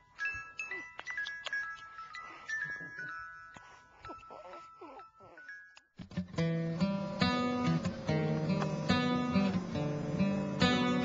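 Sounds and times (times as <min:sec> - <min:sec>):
soft chiming music: 0:00.0 - 0:11.0
baby whimpering and crying: 0:02.1 - 0:05.8.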